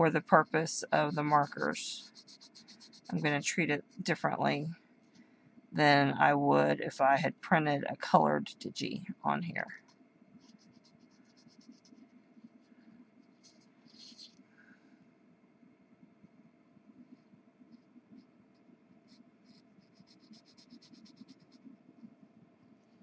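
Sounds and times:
felt-tip marker scratching on fabric: 0:00.4 - 0:03.3, 0:10.4 - 0:14.4, 0:17.7 - 0:21.7.

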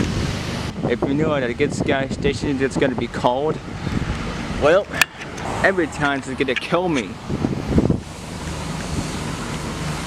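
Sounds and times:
steady low hum: 0:00.0 - 0:10.0
wind buffeting microphone: 0:00.0 - 0:10.0.

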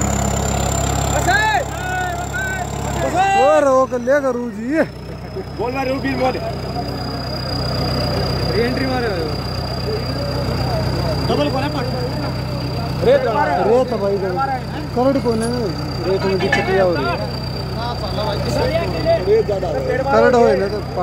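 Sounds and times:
onlookers talking: 0:00.0 - 0:21.0
tractor diesel engine idling: 0:00.0 - 0:21.0.

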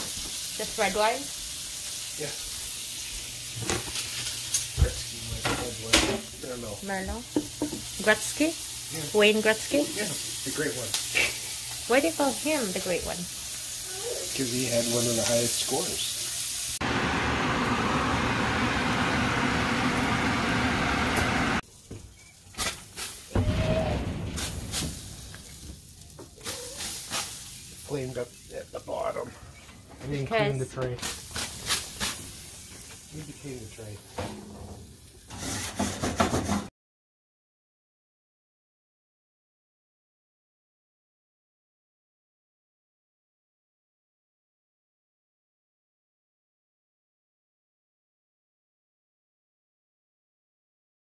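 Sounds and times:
onions sizzling in butter: 0:00.0 - 0:23.4, 0:24.4 - 0:29.3, 0:30.0 - 0:35.7.

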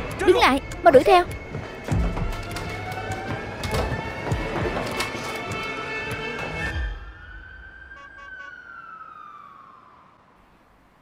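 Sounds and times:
faint siren wail: 0:05.6 - 0:10.9.

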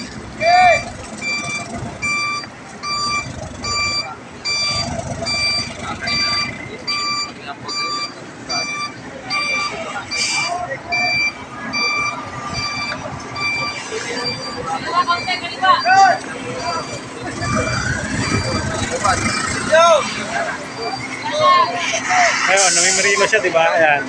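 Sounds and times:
truck engine rumble: 0:00.0 - 0:24.0
truck reversing alarm beeping: 0:00.0 - 0:24.0.

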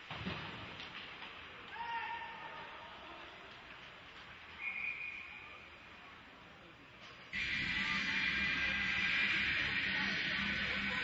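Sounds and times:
rink noise hiss: 0:07.4 - 0:11.0.

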